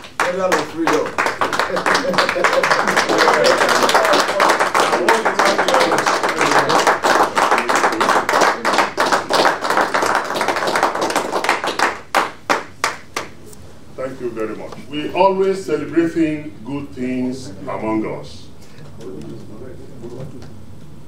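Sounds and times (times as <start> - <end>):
audience clapping: 0.0 - 13.4.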